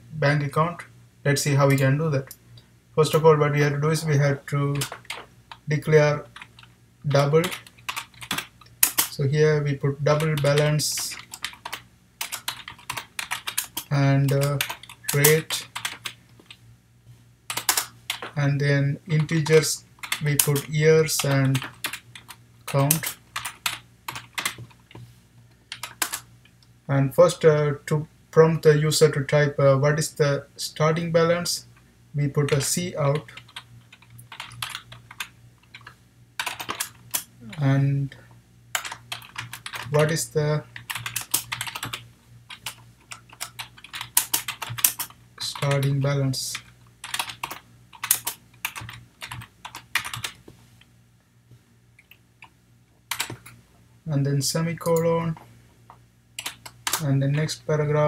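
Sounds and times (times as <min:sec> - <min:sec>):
typing on computer keyboard: 0:04.7 - 0:05.7, 0:07.4 - 0:09.2, 0:10.1 - 0:16.6, 0:17.5 - 0:18.4, 0:19.2 - 0:24.8, 0:25.7 - 0:26.3, 0:32.5 - 0:37.3, 0:38.8 - 0:40.1, 0:40.8 - 0:50.4, 0:53.1 - 0:53.6, 0:56.4 - 0:57.5.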